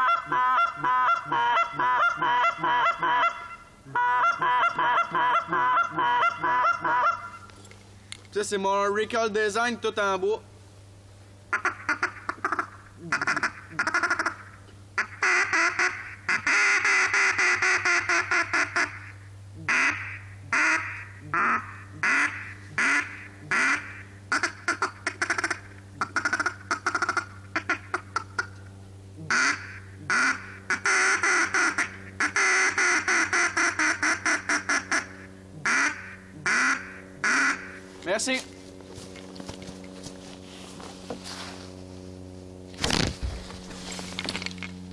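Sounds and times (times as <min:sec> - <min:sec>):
goose call honks and clucks: 0:00.0 - 0:07.5, 0:11.5 - 0:28.6, 0:29.2 - 0:37.8.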